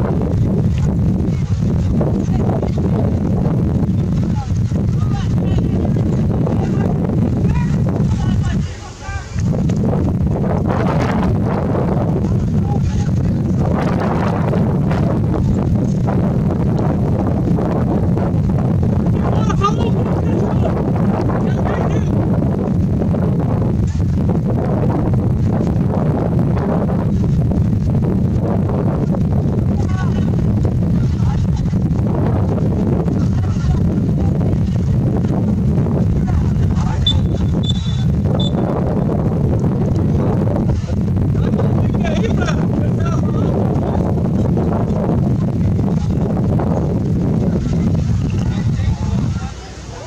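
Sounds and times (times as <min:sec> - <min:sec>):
wind buffeting microphone: 0:00.0 - 0:50.0
referee's whistle toots: 0:37.0 - 0:38.7.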